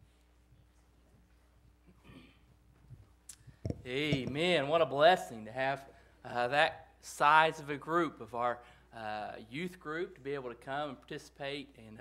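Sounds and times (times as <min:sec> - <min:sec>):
man speaking: 0:03.8 - 0:12.0.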